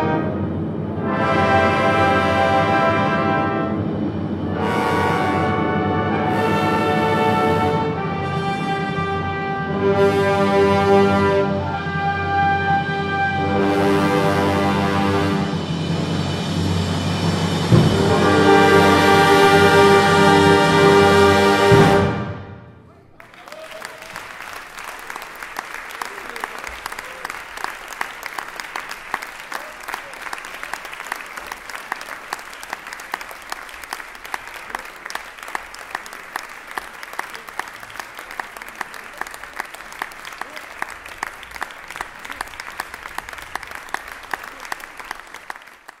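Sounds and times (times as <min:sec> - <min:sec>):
audience applauding: 0:23.1 - 0:46.0.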